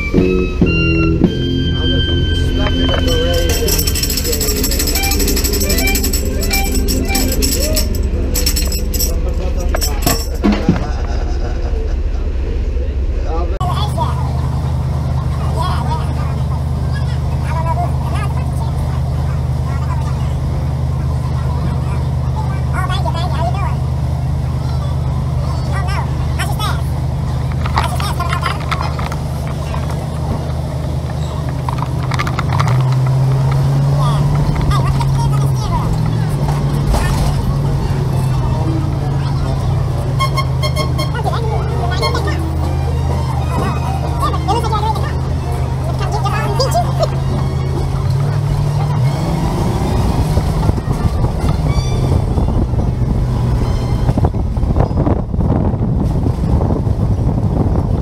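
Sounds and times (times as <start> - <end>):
street voices: 0.0 - 58.0
vehicle engine idling and revving: 0.0 - 58.0.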